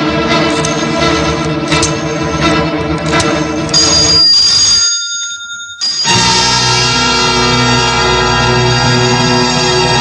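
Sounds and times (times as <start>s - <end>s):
film score music: 0.0s - 4.8s, 5.9s - 10.0s
high steady ringing tone: 3.7s - 6.6s.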